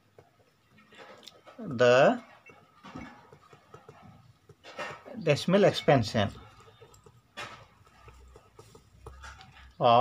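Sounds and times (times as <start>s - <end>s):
pen writing on paper: 2.5s - 5.1s, 6.2s - 9.8s.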